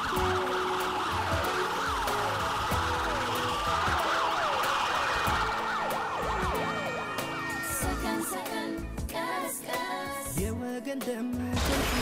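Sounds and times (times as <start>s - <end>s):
sirens wailing: 0.0s - 9.0s.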